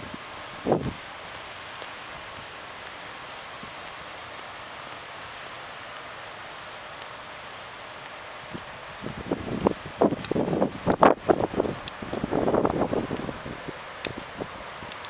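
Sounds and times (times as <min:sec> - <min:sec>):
faint high-pitched whine: 0:00.0 - 0:15.0
outdoor background hiss: 0:00.0 - 0:15.0.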